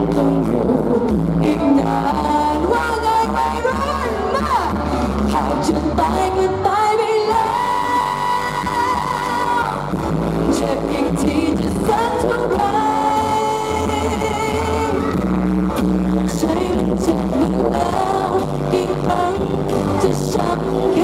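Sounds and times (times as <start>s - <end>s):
woman singing: 0.0s - 15.2s, 16.2s - 21.0s
bass guitar: 0.0s - 21.0s
drums: 0.0s - 21.0s.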